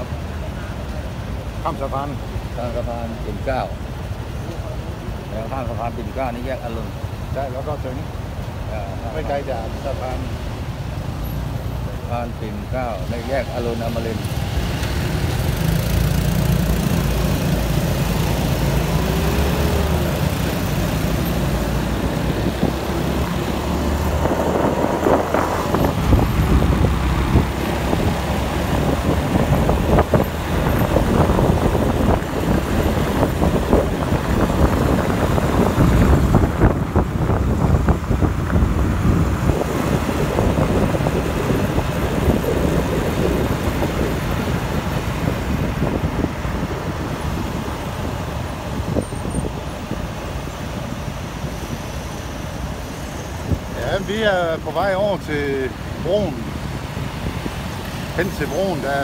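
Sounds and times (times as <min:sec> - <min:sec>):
surrounding traffic: 0:00.0 - 0:59.0
wind on microphone: 0:13.8 - 0:59.0.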